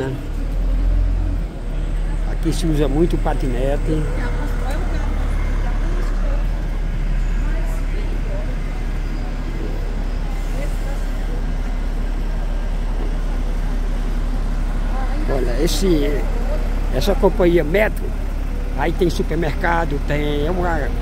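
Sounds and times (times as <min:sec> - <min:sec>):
bus idling nearby: 0:00.0 - 0:21.0
city traffic rumble: 0:00.0 - 0:21.0
faint voices of passersby: 0:00.0 - 0:21.0.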